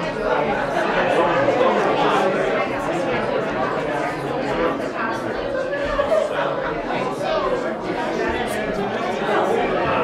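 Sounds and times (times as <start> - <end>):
hubbub of overlapping conversations: 0.0 - 10.0.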